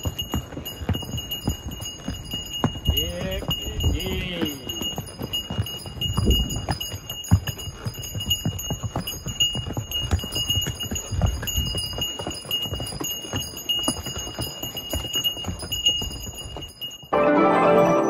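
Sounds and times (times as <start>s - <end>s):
hooves clip-clopping on stone: 0.0s - 17.1s.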